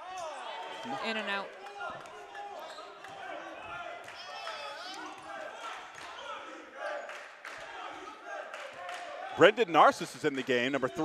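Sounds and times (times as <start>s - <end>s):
chatter of players and spectators: 0.0s - 11.0s.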